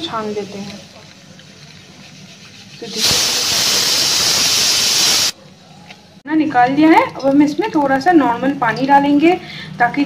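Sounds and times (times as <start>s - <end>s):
loud rushing hiss: 2.9s - 5.4s.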